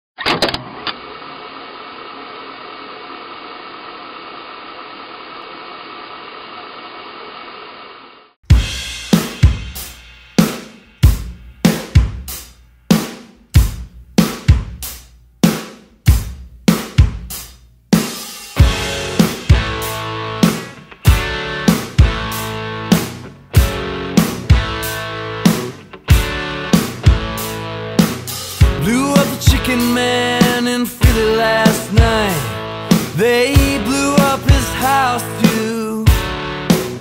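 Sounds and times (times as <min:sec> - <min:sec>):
drum kit beat: 0:08.4 - 0:37.0.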